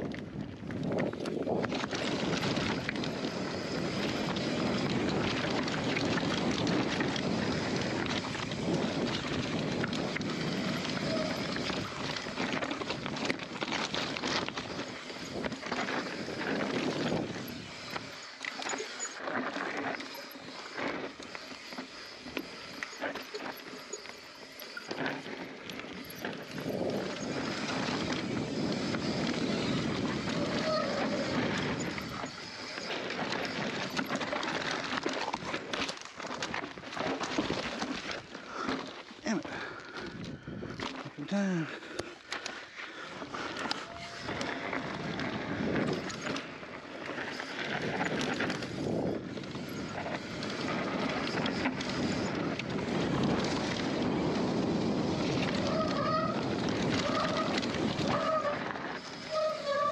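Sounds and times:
bike tyres scrabbling over dirt: 0:00.0 - 0:41.2, 0:42.2 - 0:59.9
bike rattling over rough ground: 0:00.0 - 0:59.9.

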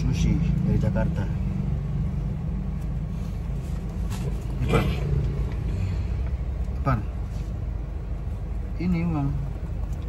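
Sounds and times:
car engine rumble inside cabin: 0:00.0 - 0:10.0.

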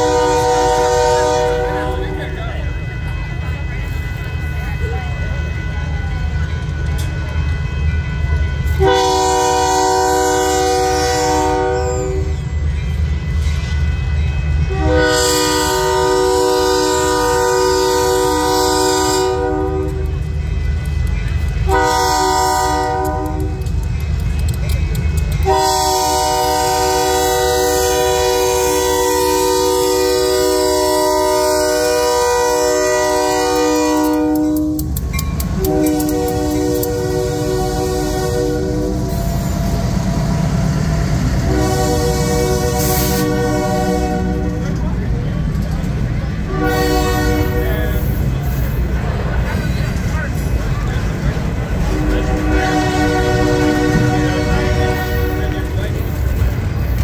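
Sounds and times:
locomotive air horn blasts: 0:00.0 - 0:12.6, 0:13.4 - 0:23.7, 0:24.7 - 0:44.8, 0:46.4 - 0:48.3, 0:51.7 - 0:56.1
locomotive rumble: 0:00.0 - 0:57.0.

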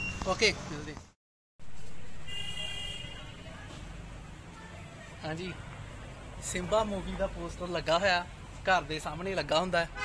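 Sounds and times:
vehicle horn toot: 0:02.3 - 0:03.3.

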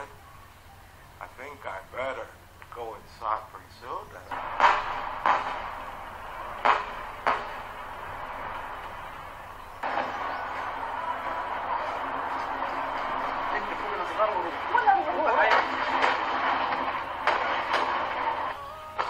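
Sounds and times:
voices: 0:00.0 - 0:19.0
explosions: 0:04.3 - 0:18.6
steady rushing noise: 0:04.3 - 0:18.6.

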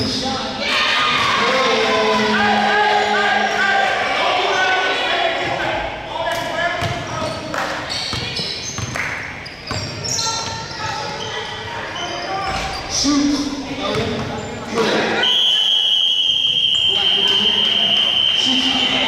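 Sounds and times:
voices echoing in gymnasium: 0:00.0 - 0:19.0.

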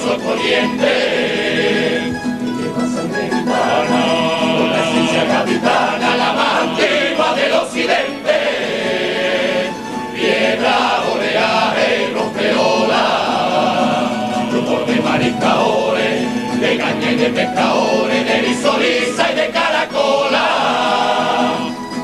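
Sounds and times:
male chorus singing: 0:00.0 - 0:21.8.

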